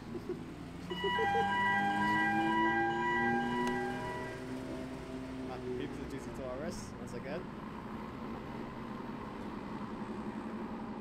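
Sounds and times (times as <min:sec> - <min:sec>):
car engines droning at low revs: 0:00.0 - 0:11.0.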